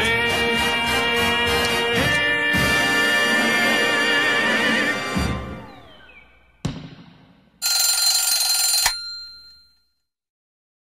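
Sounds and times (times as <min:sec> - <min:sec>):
alarm clock bell ringing: 0:07.6 - 0:10.0.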